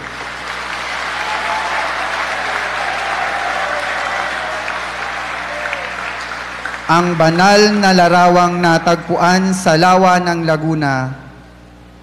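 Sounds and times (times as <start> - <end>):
congregation applauding: 0.0 - 10.4.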